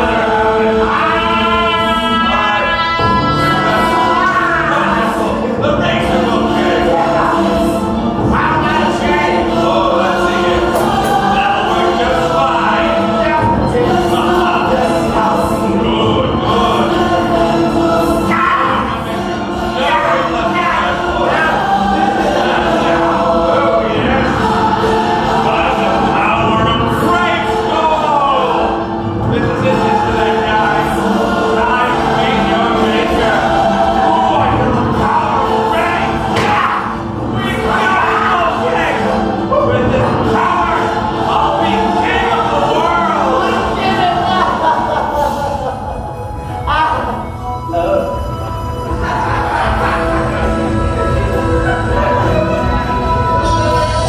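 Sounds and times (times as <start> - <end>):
choir singing held chords: 0.0 - 54.0.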